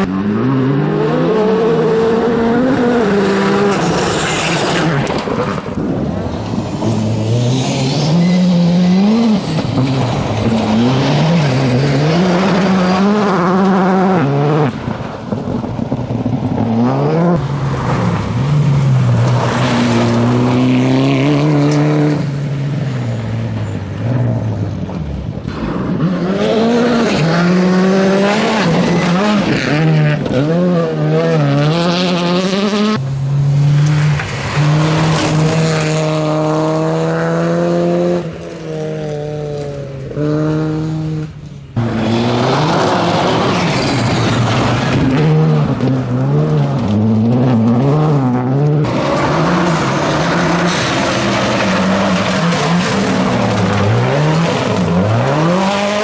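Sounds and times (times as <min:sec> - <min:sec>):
rally car engines revving: 0:00.0 - 0:56.0
tyres on gravel: 0:33.0 - 0:40.1, 0:41.8 - 0:56.0.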